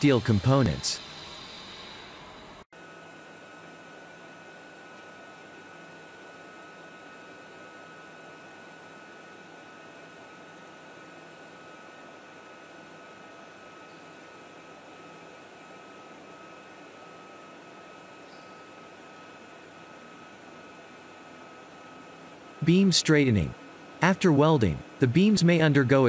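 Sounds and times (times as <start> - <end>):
factory machinery hiss: 0.0 - 2.6.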